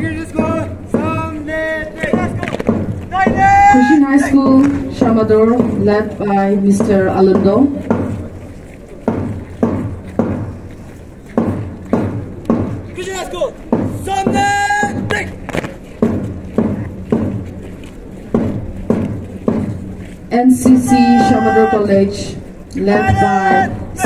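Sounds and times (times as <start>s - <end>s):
drum beating march tempo: 0.0s - 24.0s
person shouting: 3.1s - 4.3s, 13.0s - 15.3s, 20.8s - 22.0s, 22.9s - 24.0s.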